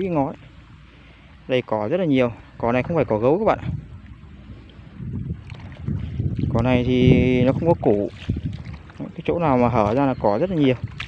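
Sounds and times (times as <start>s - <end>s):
feet wading through water and mud: 0.0s - 11.0s.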